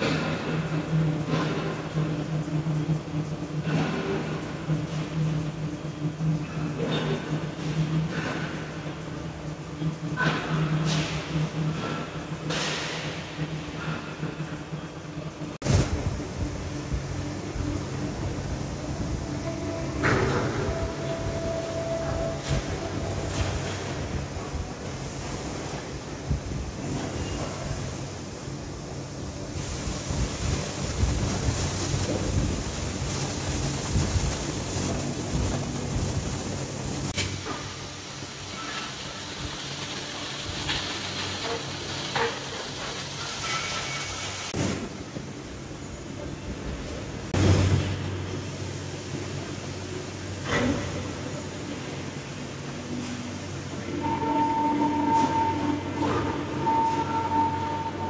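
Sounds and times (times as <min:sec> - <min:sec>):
rumbling hissing machinery: 0:00.0 - 0:58.0.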